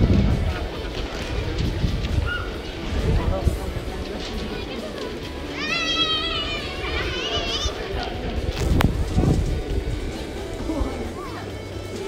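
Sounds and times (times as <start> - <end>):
background hubbub: 0.0 - 12.0.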